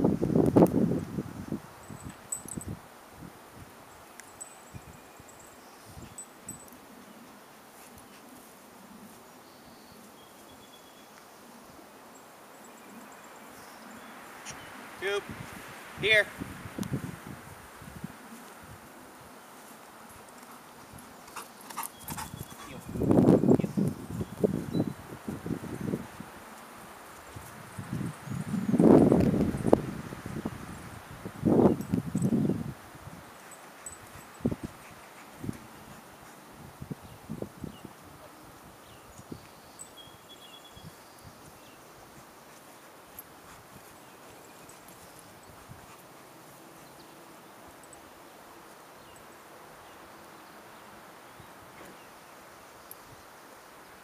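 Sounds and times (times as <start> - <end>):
faint metallic clinks: 1.8 - 2.8, 3.9 - 7.3, 33.3 - 35.2, 42.8 - 46.2
soft uneven thuds of dog moving: 41.4 - 47.0.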